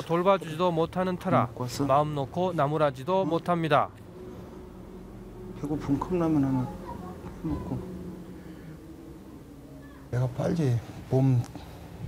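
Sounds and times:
low room hum: 0.0s - 12.0s
faint mumbled voice: 6.3s - 8.6s.

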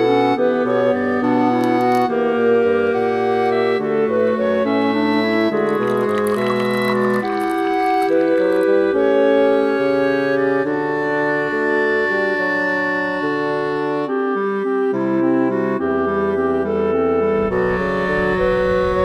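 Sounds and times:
slow clarinet-like melody: 0.0s - 19.0s.

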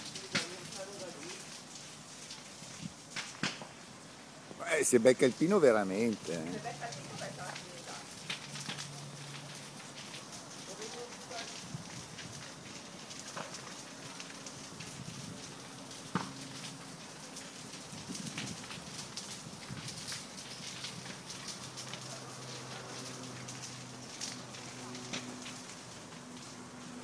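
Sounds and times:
brush fire crackling: 0.0s - 27.0s.

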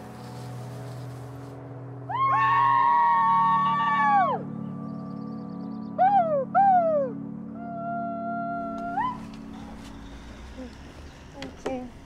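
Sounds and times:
soft music with low drone: 0.0s - 12.0s.

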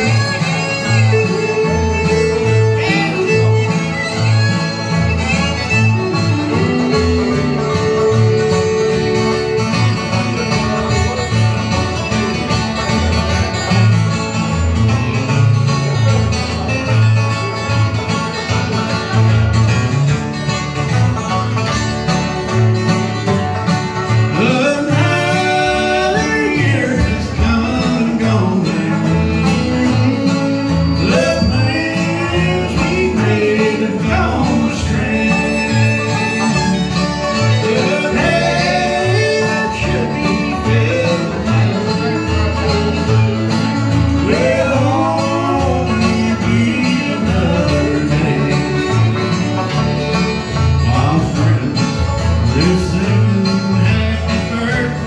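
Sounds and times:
acoustic guitars: 0.0s - 55.0s
banjo: 0.0s - 55.0s
fiddle: 0.0s - 55.0s
upright bass: 0.0s - 55.0s.

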